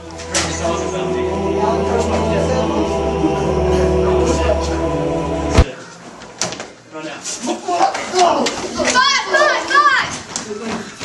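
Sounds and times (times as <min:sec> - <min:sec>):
young people shouting: 0:08.4 - 0:10.1
young people yelping: 0:08.4 - 0:10.1.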